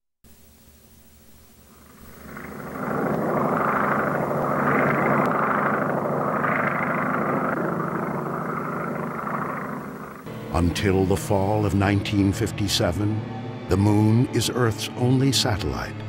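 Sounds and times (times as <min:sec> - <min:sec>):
propeller airplane engine drone: 0:00.3 - 0:16.0.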